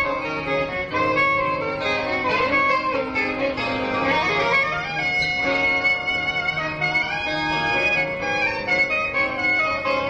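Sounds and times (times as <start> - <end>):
bass: 0.0 - 10.0
guitar: 0.0 - 10.0
held lead note: 0.0 - 10.0.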